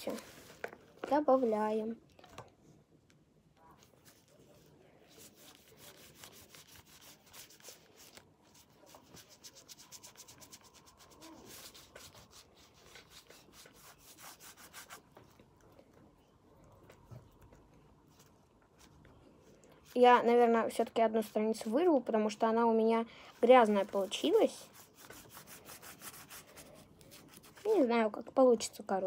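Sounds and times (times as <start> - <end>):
drawing tool scratching on paper: 5.2 - 15.1, 23.5 - 27.7.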